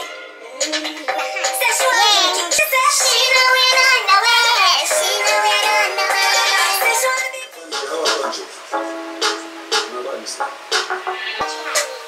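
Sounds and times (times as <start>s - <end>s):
dancehall song with singer: 0.0s - 9.9s.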